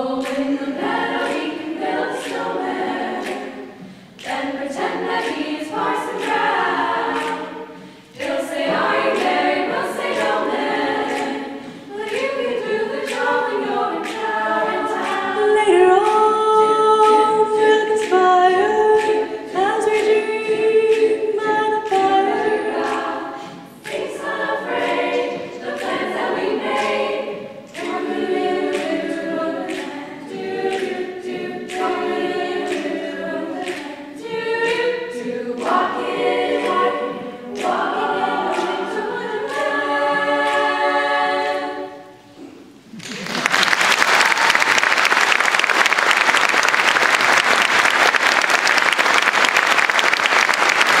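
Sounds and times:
girls' choir singing a cappella: 0.0 - 43.0
audience applause: 42.9 - 51.0.

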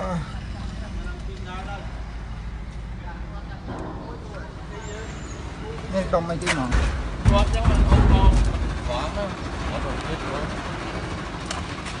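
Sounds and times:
low rumble: 1.8 - 5.7.

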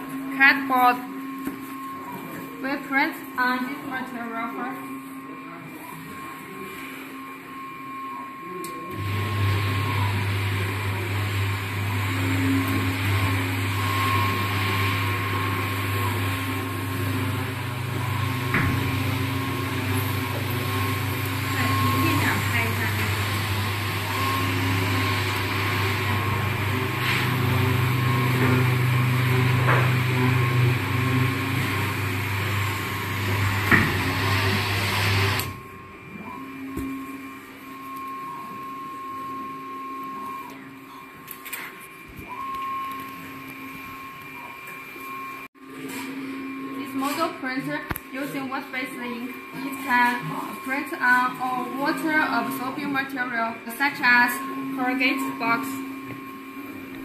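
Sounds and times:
printer machine hum: 8.9 - 45.2.

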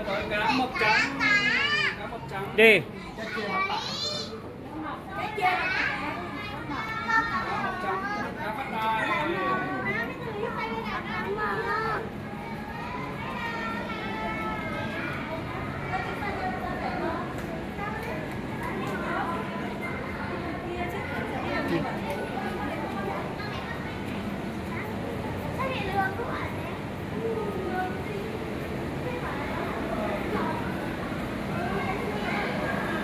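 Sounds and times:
chatter of visitors and children: 0.0 - 33.0.

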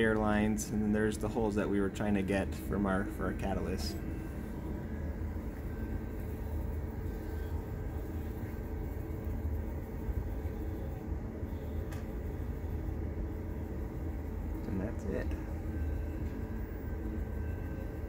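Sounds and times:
faint steady tones: 0.0 - 18.0
low mechanical hum: 0.0 - 18.0.

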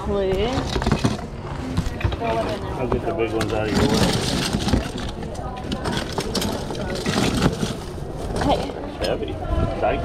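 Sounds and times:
plastic toys clattering in tub: 0.4 - 9.2.

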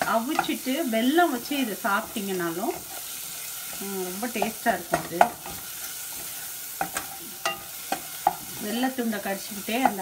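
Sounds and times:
spatula scraping and knocking pan: 0.0 - 10.0
spices sizzling in oil: 0.0 - 10.0.

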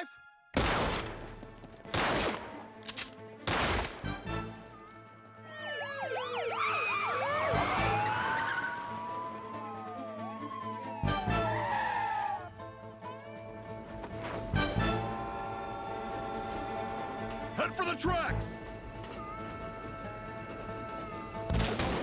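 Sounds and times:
background music: 0.0 - 22.0
police sirens wailing: 4.3 - 13.8, 14.5 - 22.0.

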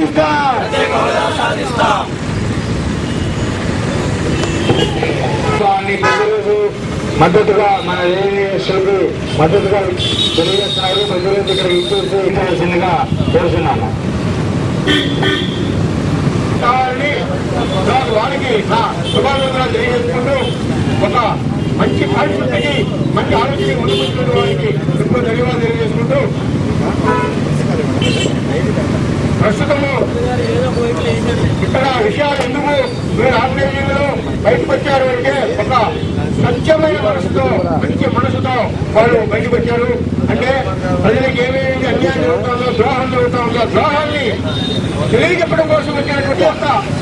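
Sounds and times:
man speaking into a microphone: 0.0 - 2.2, 4.8 - 14.1, 16.5 - 47.0
road traffic rumbling: 0.0 - 47.0.

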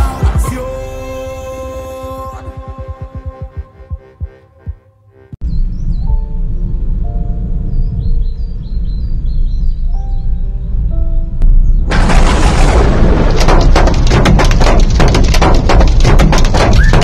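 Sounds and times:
birds chirping: 3.6 - 10.9
steady low rumble: 5.4 - 16.7.

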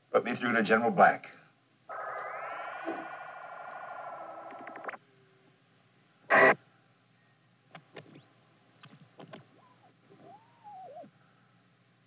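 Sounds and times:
warbling telephone signal tone: 1.9 - 5.0, 9.6 - 11.1.

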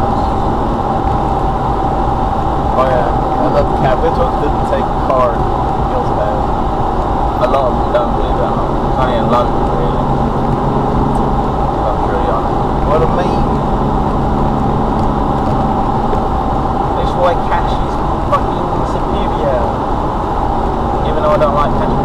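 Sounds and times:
car road and engine noise: 0.0 - 22.0
faint voices: 2.7 - 13.7, 16.9 - 19.9, 20.8 - 22.0.

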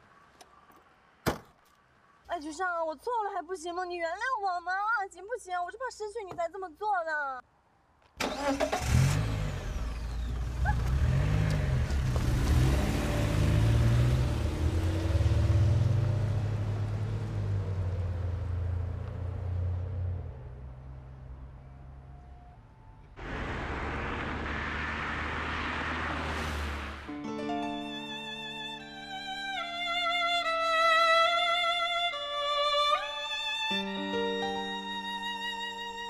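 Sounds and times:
car engine revving: 8.2 - 21.0, 23.2 - 27.1
engine and road noise inside car: 8.2 - 27.1.

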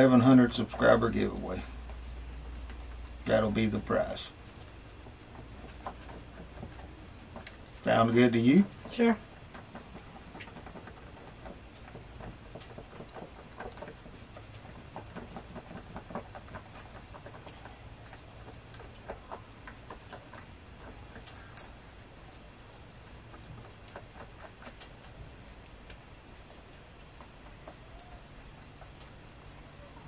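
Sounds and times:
epoxy stirring scraping: 0.0 - 22.0
steady low hum: 0.0 - 30.0.

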